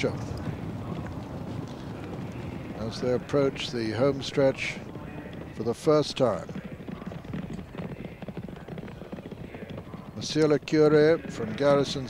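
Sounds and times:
horses galloping on turf: 0.0s - 12.0s.

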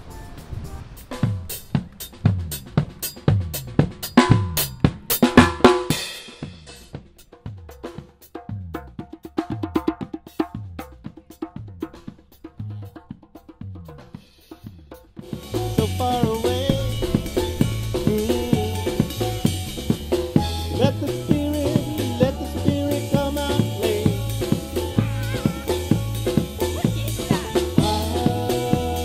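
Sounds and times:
drum kit solo: 0.0s - 29.0s
cymbal crashes: 15.2s - 22.1s
band instruments playing: 15.2s - 29.0s.

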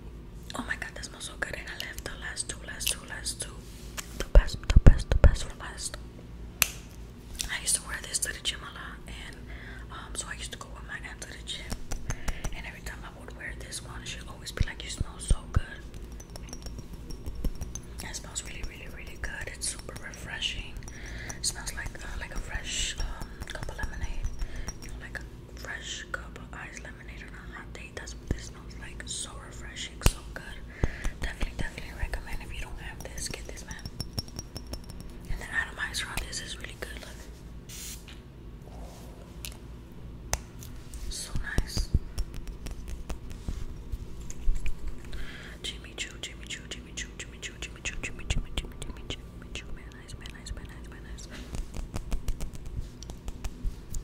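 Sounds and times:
close-up whispering: 0.5s - 3.6s, 4.2s - 6.0s, 7.4s - 16.0s, 17.9s - 33.9s, 35.3s - 37.3s, 41.0s - 42.0s, 45.3s - 51.6s
fragrance bottle clicks and taps: 11.7s - 12.6s, 15.9s - 24.9s, 33.0s - 35.2s, 41.4s - 43.5s, 51.5s - 53.7s.

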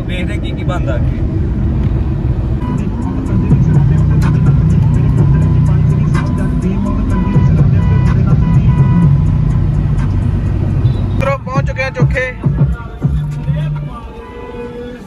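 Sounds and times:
car road and engine rumble: 0.0s - 15.0s
music with light beat: 3.4s - 10.4s, 11.5s - 14.1s.

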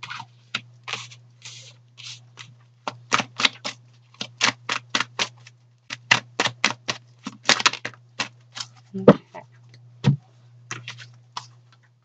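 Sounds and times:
cards being shuffled: 0.0s - 8.8s, 10.7s - 11.6s.

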